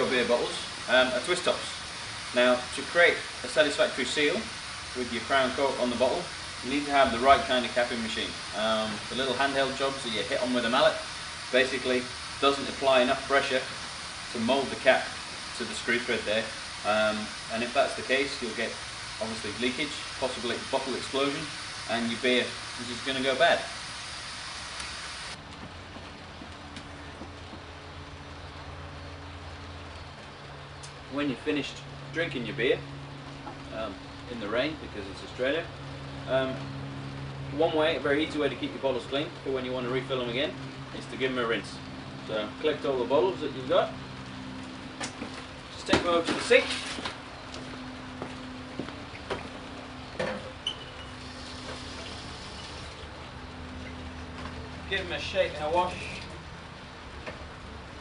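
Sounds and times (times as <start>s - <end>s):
background hiss: 0.0s - 25.4s.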